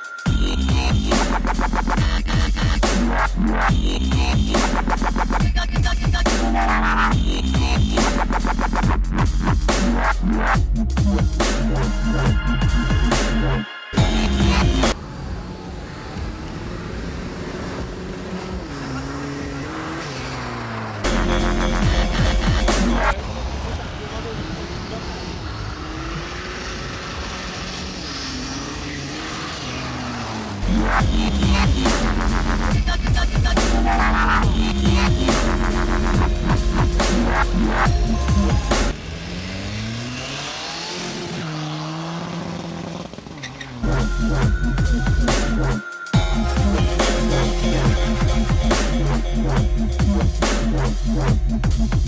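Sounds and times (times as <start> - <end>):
car engine at high revs: 14.0 - 45.6.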